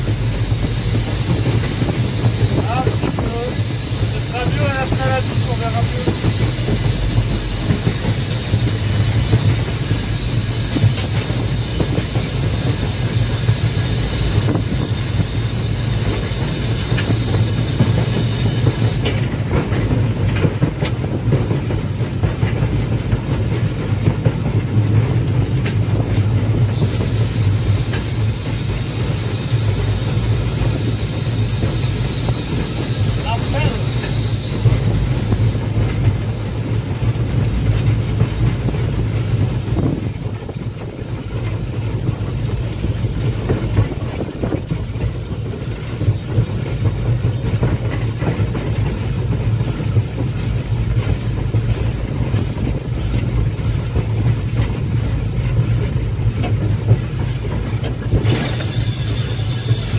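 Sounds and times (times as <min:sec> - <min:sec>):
wheels rumbling on rail: 0:00.0 - 0:59.9.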